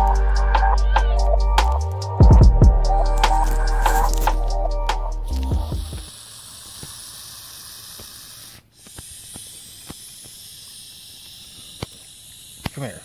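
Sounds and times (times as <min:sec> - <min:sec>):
background music: 0:00.0 - 0:06.0
snake hissing: 0:00.0 - 0:13.0.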